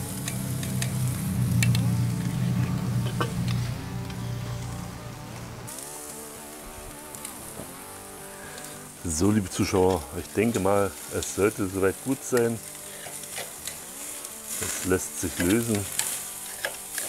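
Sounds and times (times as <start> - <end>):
steak sizzling on grill: 0.0 - 17.0
clicks and crackles: 0.1 - 4.7, 6.9 - 7.8, 9.7 - 17.0.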